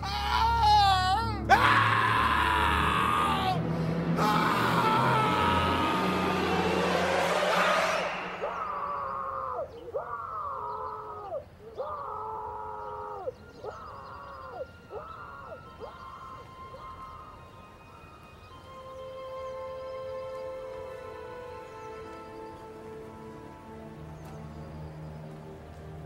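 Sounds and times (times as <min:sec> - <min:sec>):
man screaming: 0:00.0 - 0:07.8
eerie film score music: 0:00.0 - 0:26.0.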